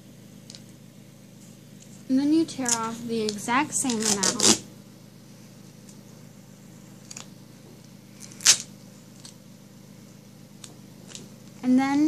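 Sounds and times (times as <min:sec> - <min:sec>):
duct tape ripping: 0:02.6 - 0:04.6, 0:08.2 - 0:09.4.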